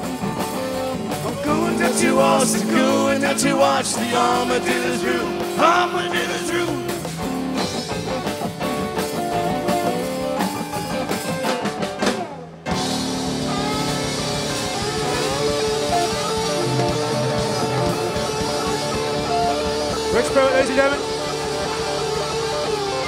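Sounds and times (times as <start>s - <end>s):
held guitar notes and bends: 0.0s - 23.0s
rock band playing: 0.0s - 23.0s.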